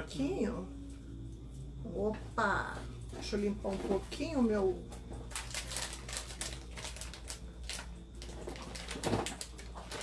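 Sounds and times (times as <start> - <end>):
cloth rustling and crumpling: 5.3 - 10.0.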